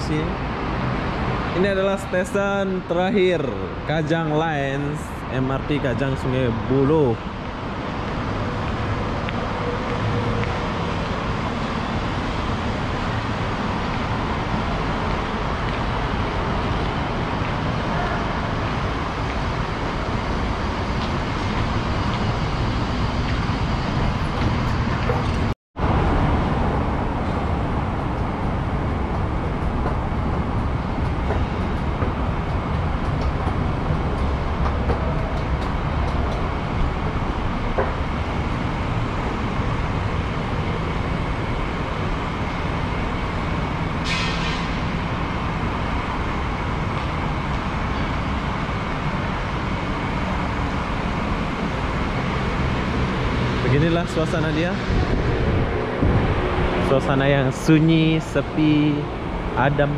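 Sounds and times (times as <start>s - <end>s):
road traffic: 0.0s - 59.9s.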